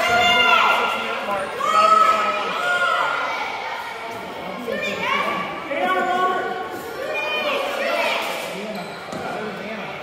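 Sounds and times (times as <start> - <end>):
chatter and calls of people: 0.0 - 10.0.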